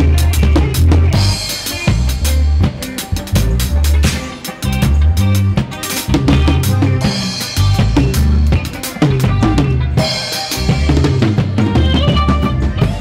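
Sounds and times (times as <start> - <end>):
bass notes: 0.0 - 13.0
drum kit playing: 0.0 - 13.0
keyboard chords: 0.0 - 13.0.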